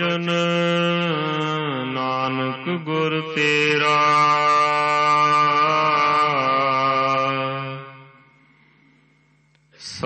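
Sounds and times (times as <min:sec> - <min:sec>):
person chanting: 0:00.0 - 0:08.6, 0:09.8 - 0:10.0.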